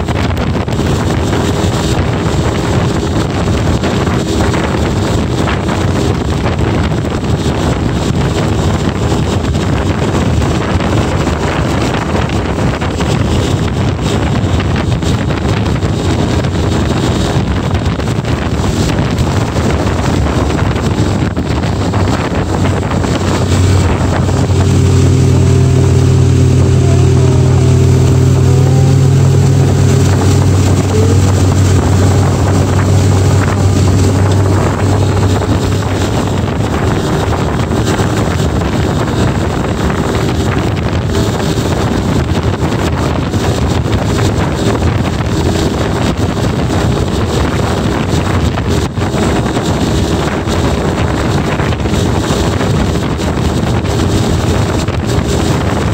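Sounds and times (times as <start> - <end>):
boat engine running at speed: 0.0 - 55.9
wind rushing over microphone: 0.0 - 55.9.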